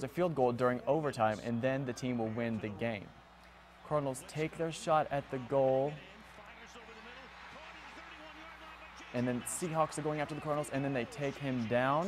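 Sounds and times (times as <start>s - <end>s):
faint broadcast speech: 0.7s - 12.0s.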